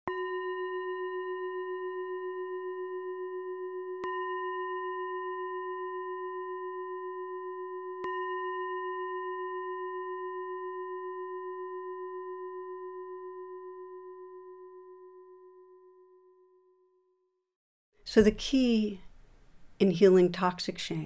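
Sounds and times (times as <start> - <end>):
singing bowl bell ringing: 0.1 - 17.2.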